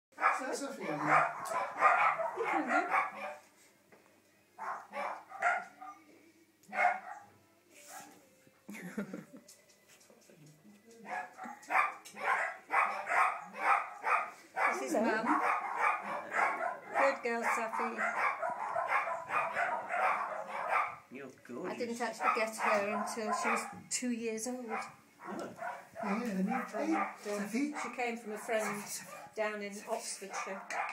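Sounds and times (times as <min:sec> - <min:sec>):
dogs barking and yapping: 0:00.1 - 0:03.6, 0:04.6 - 0:08.2, 0:11.0 - 0:21.1, 0:22.0 - 0:23.9, 0:24.6 - 0:30.9.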